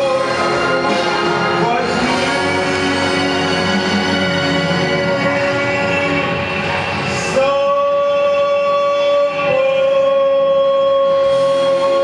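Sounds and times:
orchestral backing track: 0:00.0 - 0:12.0
man singing a long note: 0:01.4 - 0:12.0.

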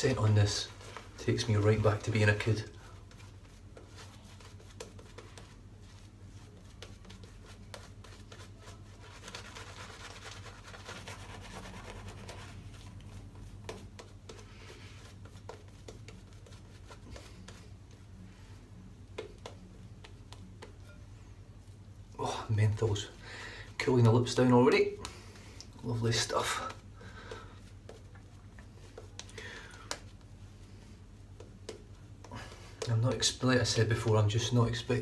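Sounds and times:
shaving brush scrubbing: 0:00.0 - 0:18.2
low steady hum: 0:00.0 - 0:35.0.

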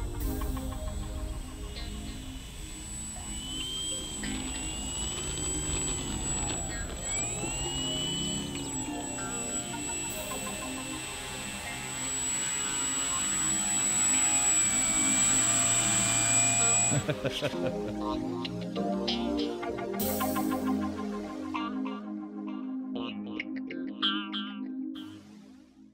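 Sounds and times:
electric motor and propeller whine: 0:00.0 - 0:18.1.

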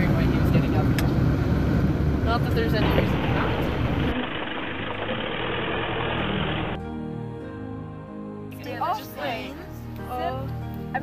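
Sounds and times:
car engine and tyre noise: 0:00.0 - 0:06.8
music with sustained tones: 0:06.6 - 0:11.0.

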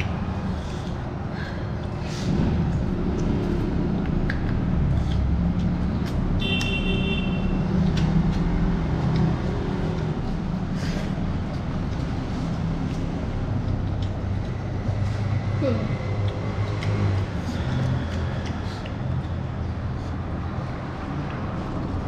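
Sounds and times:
low engine rumble: 0:00.0 - 0:06.5.

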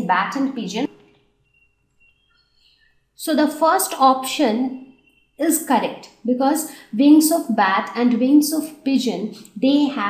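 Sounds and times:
person speaking: 0:00.0 - 0:00.9
faint high-pitched chirps: 0:00.8 - 0:03.3, 0:03.9 - 0:06.8.

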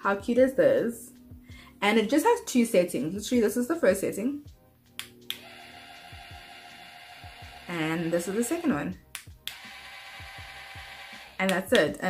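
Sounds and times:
small motor humming: 0:05.4 - 0:08.7, 0:09.5 - 0:11.4.

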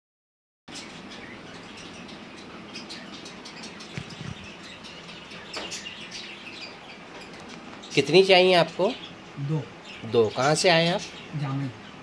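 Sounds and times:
small birds chirping: 0:00.7 - 0:12.0.

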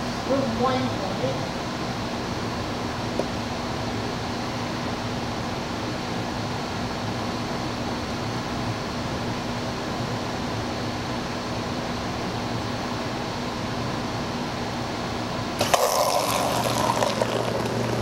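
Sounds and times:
steady low hum: 0:00.0 - 0:18.0
pump humming: 0:15.6 - 0:18.0
water pouring into a cup: 0:15.6 - 0:18.0.

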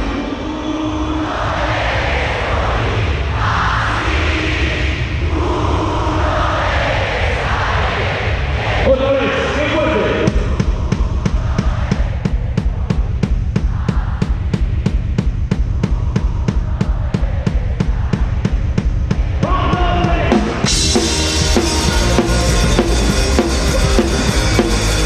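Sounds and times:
deep low rumble: 0:00.8 - 0:07.7.

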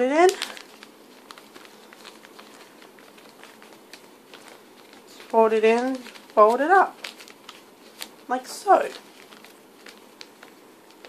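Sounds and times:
wrapping paper crackling: 0:00.0 - 0:11.0.

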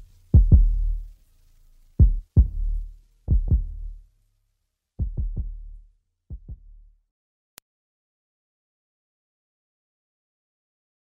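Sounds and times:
hip-hop beat kick drum: 0:00.0 - 0:01.2, 0:02.0 - 0:04.0, 0:05.0 - 0:07.0.

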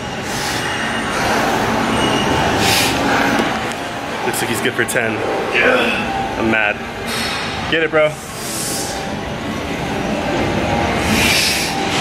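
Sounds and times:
gym room noise: 0:00.0 - 0:12.0
man's sharp hissing breaths: 0:02.6 - 0:03.3, 0:08.3 - 0:09.1, 0:11.0 - 0:11.9.

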